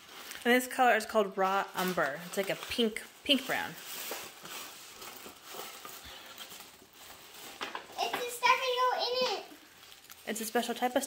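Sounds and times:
tissue paper and plastic rustling: 0.0 - 11.0.

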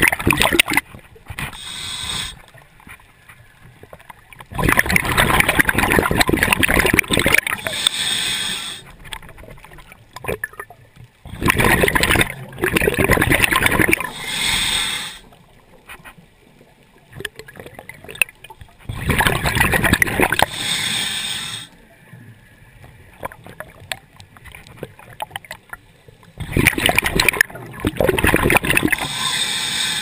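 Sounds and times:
diver regulator bubbling and hissing: 0.0 - 10.6, 11.2 - 16.2, 17.1 - 25.6, 26.2 - 30.0
faint clicking: 8.8 - 11.2, 21.7 - 29.2.

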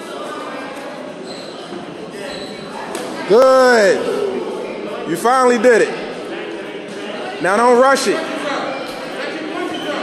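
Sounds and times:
hubbub of indistinct voices: 0.0 - 10.0.

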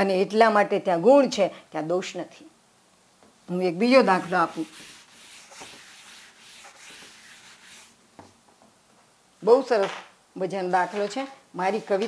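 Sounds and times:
duster scrubbing a chalkboard: 4.1 - 8.0.

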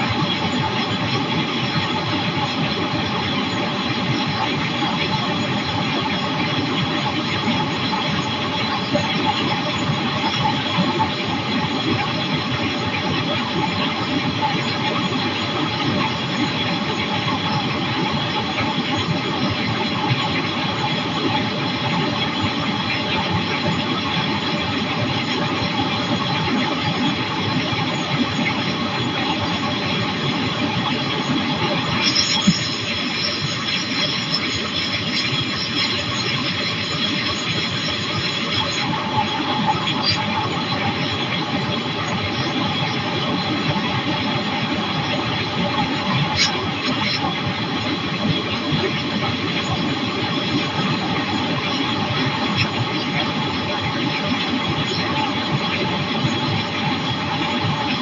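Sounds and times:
microlight engine drone: 0.0 - 57.9.

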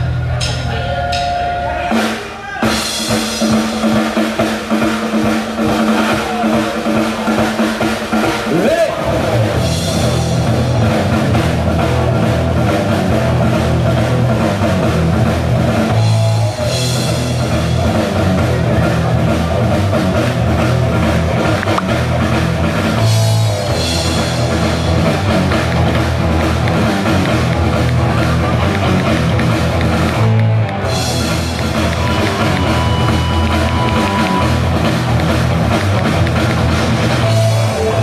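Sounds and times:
drum kit beat: 0.0 - 38.0
electric guitars: 0.0 - 38.0.

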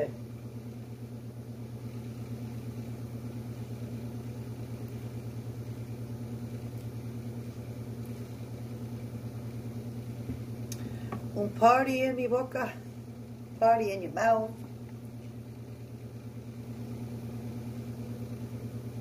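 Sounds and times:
motor humming with fast pulsing: 0.0 - 19.0.

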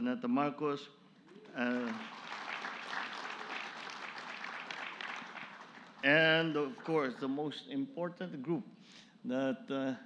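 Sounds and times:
audience applauding: 1.4 - 7.2.

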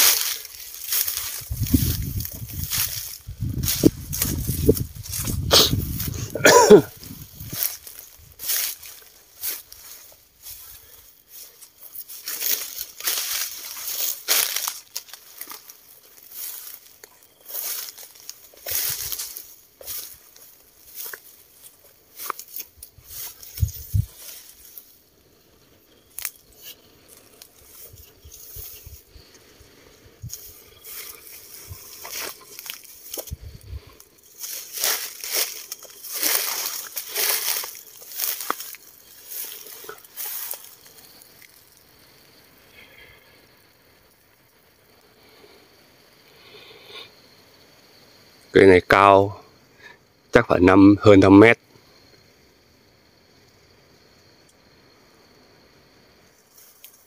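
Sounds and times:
footsteps crunching dry leaves: 0.0 - 42.4.

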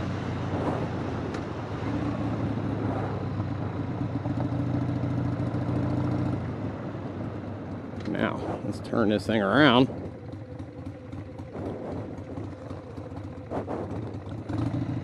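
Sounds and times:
motorcycle engine cruising: 0.0 - 15.0
road and wind noise: 0.0 - 15.0.

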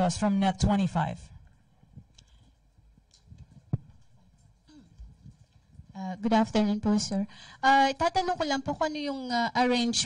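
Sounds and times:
microphone handling knocks and clicks: 3.1 - 6.0.

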